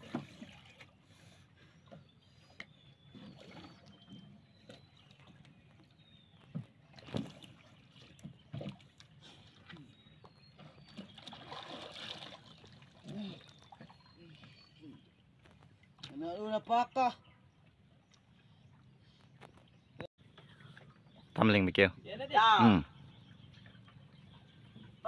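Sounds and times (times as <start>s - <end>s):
water sloshing and splashing: 0.0s - 22.0s, 22.9s - 25.0s.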